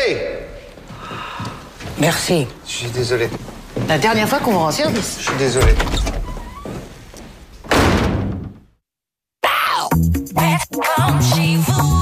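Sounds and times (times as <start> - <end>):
door slamming shut: 5.3 - 6.6, 7.6 - 8.7.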